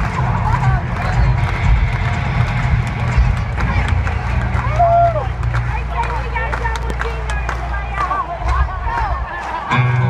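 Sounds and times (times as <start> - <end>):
crowd voices: 0.0 - 10.0
distant rock concert rumble: 0.0 - 10.0.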